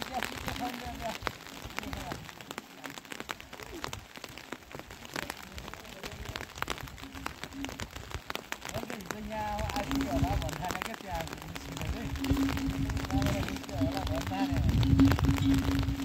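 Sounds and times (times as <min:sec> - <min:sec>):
faint voices: 0:00.0 - 0:16.0
rain drops ticking: 0:00.0 - 0:16.0
steady rain hiss: 0:00.0 - 0:16.0.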